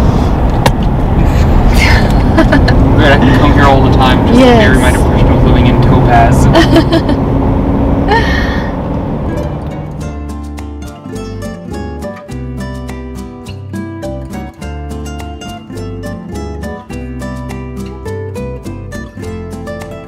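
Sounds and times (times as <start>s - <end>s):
car cabin road noise: 0.0s - 10.5s
people talking: 1.8s - 7.2s
music: 9.3s - 20.0s.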